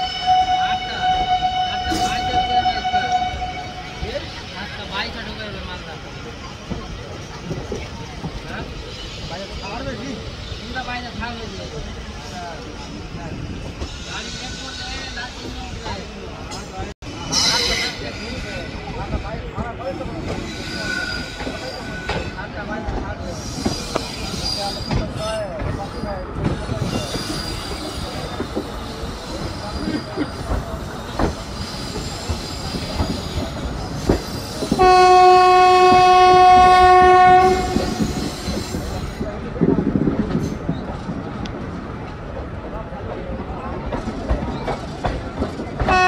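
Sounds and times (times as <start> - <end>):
train horn long note: 0.0 - 4.0, 34.8 - 38.2
train rumbling: 0.0 - 46.0
faint high wheel squeal: 17.2 - 22.6, 23.2 - 34.8.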